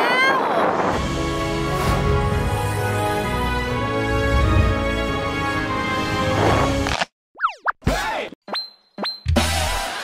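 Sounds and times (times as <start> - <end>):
background music: 1.0 - 7.0.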